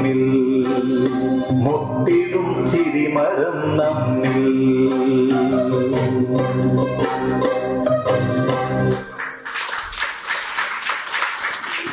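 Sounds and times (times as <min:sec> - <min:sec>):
recorded song: 0:00.0 - 0:11.9
audience applauding: 0:08.9 - 0:11.9.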